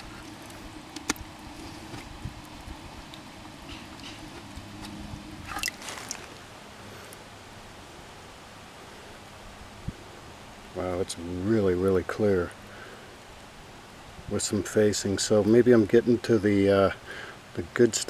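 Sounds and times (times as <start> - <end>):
water sloshing in a bucket: 0.0 - 6.5.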